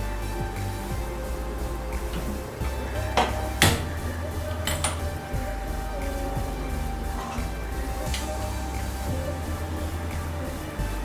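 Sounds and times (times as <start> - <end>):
background music: 0.0 - 11.0
kitchenware clinking: 2.0 - 5.3.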